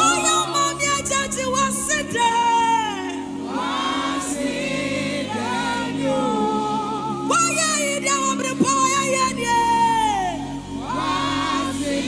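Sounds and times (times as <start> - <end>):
woman singing lead: 0.0 - 3.9, 5.2 - 11.8
choir singing along: 0.0 - 8.6, 9.6 - 12.0.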